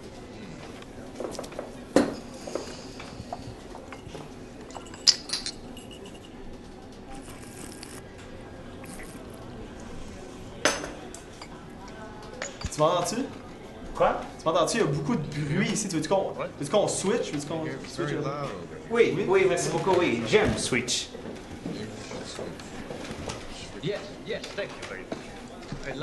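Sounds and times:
cup clinking on saucer: 3.9 - 6.4.

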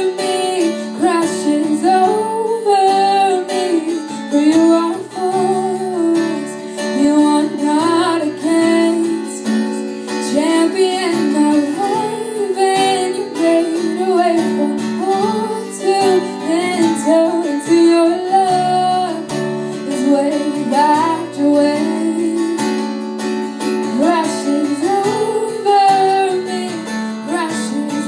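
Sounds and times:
strummed acoustic guitar: 0.0 - 28.0
woman singing into a microphone: 0.0 - 28.0.

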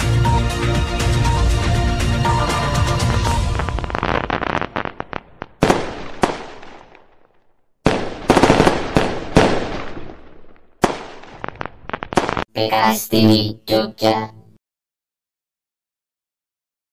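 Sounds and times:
fireworks bangs and crackles: 2.3 - 12.5.

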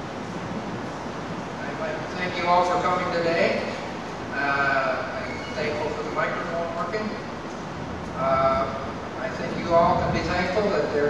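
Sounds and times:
man speaking: 1.6 - 7.2, 8.2 - 11.0.

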